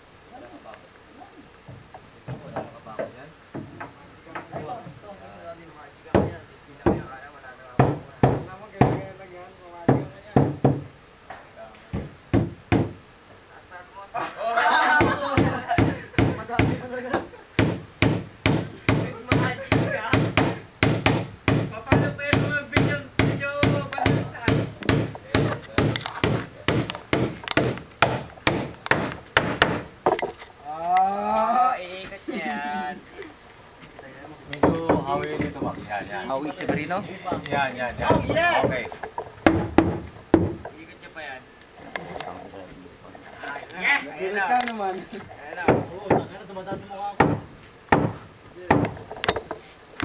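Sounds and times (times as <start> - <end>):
hammer striking wooden boards: 6.2 - 7.1, 7.8 - 9.1, 9.9 - 10.9, 11.9 - 13.0, 15.0 - 16.8, 17.6 - 30.3, 34.6 - 35.8, 36.6 - 40.8, 45.6 - 49.6.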